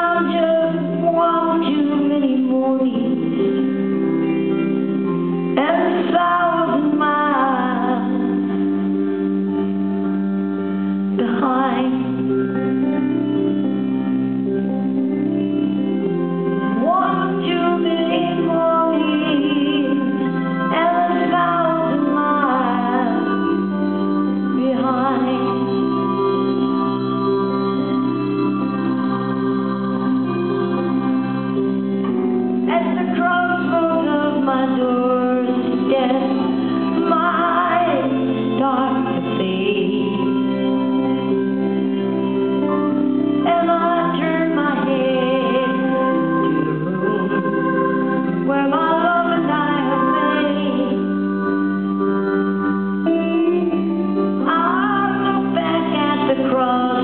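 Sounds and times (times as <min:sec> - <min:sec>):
electric guitar: 0:00.0 - 0:57.0
held melody line stepping down: 0:00.0 - 0:57.0.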